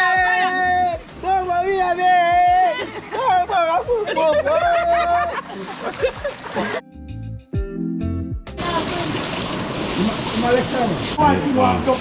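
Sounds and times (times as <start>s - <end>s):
background music: 0.0s - 9.2s
outdoor background noise: 8.6s - 12.0s.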